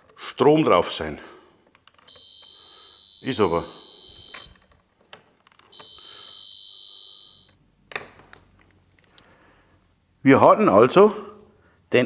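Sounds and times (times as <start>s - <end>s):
voltage tester beeping: 2.1s - 4.7s, 5.7s - 7.6s.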